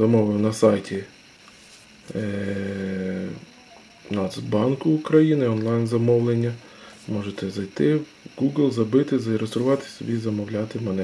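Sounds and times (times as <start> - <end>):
man's drawn-out hesitation sound: 2.1 - 11.0.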